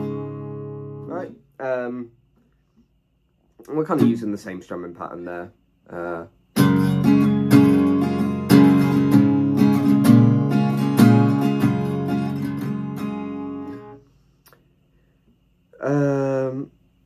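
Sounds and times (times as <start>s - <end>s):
acoustic guitar strumming: 0.0s - 1.4s, 3.8s - 4.4s, 6.0s - 14.1s.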